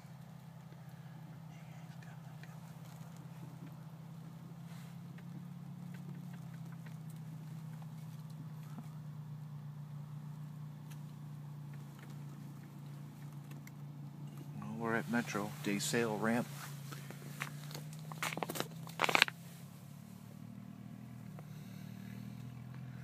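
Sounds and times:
low mechanical hum: 0:00.0 - 0:23.0.

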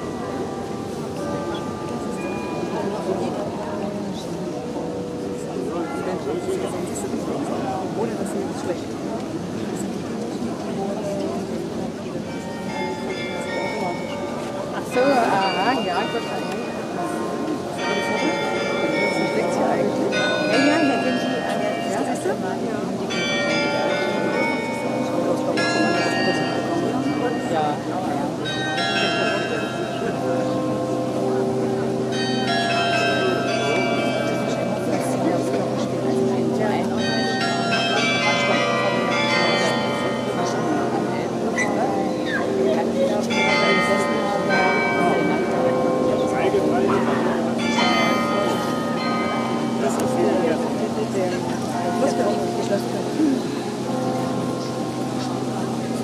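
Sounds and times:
carillon bells ringing: 0:00.0 - 0:04.1, 0:12.2 - 0:56.0.

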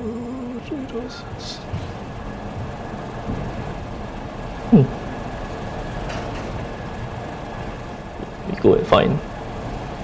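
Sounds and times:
room noise: 0:00.0 - 0:10.0
man saying hmm: 0:04.7 - 0:05.0.

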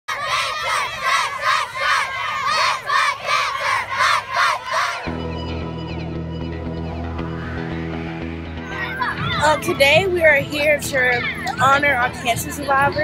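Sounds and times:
children chanting: 0:00.1 - 0:05.2
music: 0:05.0 - 0:13.0.

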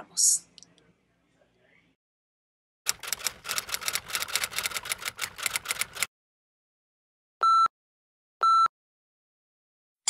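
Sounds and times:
rapid typing clicks: 0:02.9 - 0:06.1.

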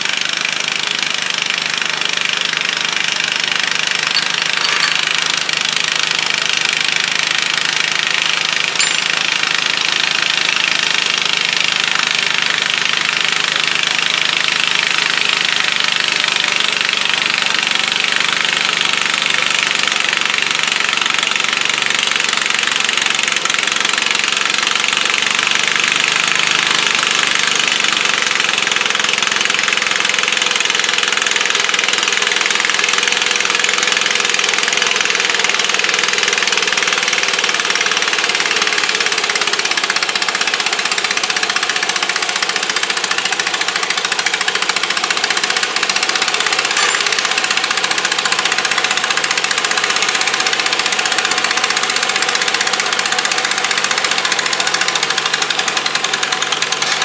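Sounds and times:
tractor engine running under load: 0:00.0 - 0:57.0.

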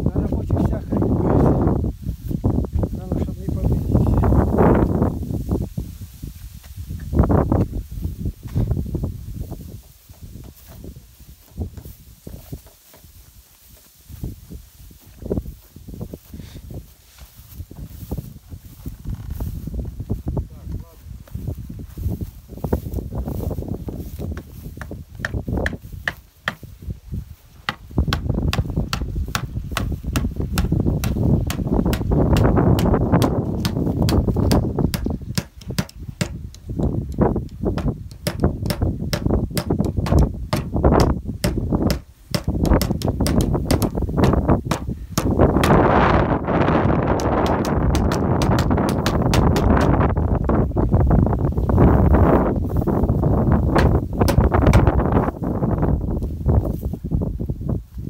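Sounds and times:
grass brushing microphone: 0:00.0 - 0:58.0
wind buffeting microphone: 0:00.0 - 0:58.0.

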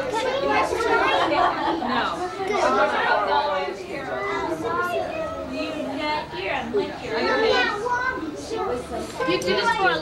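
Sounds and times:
people and children chattering: 0:00.0 - 0:10.0.

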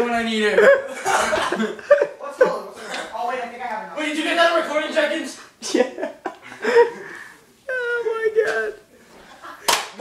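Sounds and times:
sharp slap: 0:09.7 - 0:10.0.

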